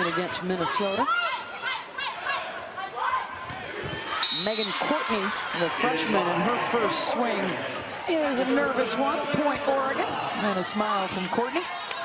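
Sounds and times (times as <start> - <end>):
arena crowd noise and voices: 0.0 - 12.0.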